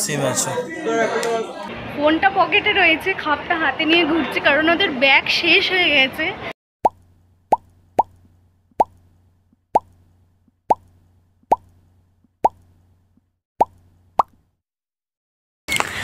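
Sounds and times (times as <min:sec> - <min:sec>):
bubble pop bloops: 0:06.8 - 0:09.2, 0:09.8 - 0:10.1, 0:10.7 - 0:12.9, 0:13.6 - 0:14.5.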